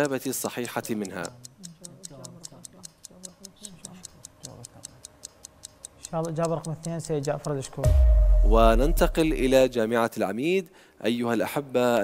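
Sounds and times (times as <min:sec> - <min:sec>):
countdown timer ticking rapidly: 0:05.1 - 0:09.8.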